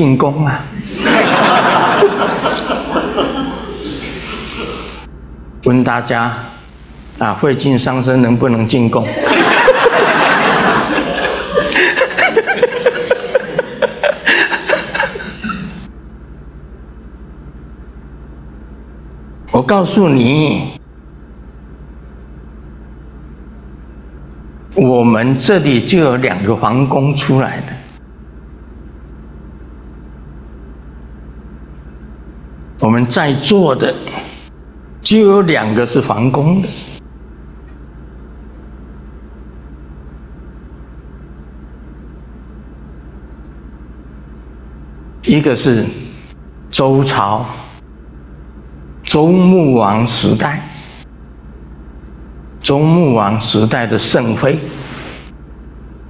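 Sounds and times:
low hum: 0:00.6 - 0:05.9, 0:09.0 - 0:56.0
laughter: 0:00.8 - 0:05.0, 0:09.0 - 0:15.9.

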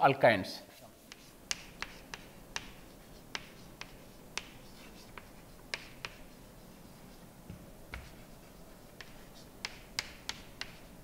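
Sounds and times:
chalk clicking on blackboard: 0:01.0 - 0:11.0.

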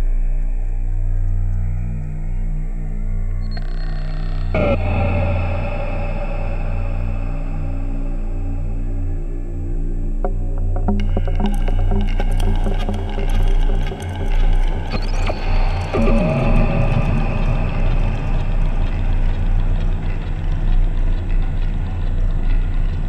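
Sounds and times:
low synthesizer drone: 0:04.4 - 0:23.0
sustained synth tones: 0:04.6 - 0:21.1
synth blips: 0:10.3 - 0:18.4
tone sweeping down: 0:10.3 - 0:19.2.

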